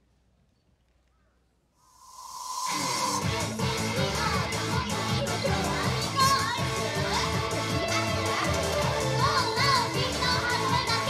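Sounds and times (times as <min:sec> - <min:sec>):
high-pitched vocal call: 0:01.9 - 0:04.4
pop song over a pa system: 0:02.4 - 0:11.0.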